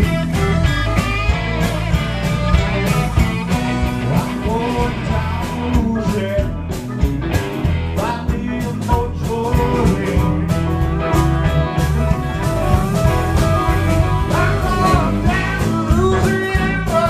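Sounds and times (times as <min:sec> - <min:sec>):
amplified blues harmonica: 0:00.0 - 0:08.5, 0:09.3 - 0:17.0
electric blues band playing: 0:00.0 - 0:17.0.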